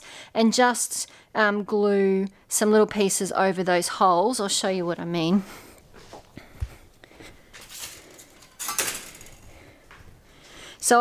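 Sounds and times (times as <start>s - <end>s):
sheet steel offcuts clinking: 7.7s - 9.4s.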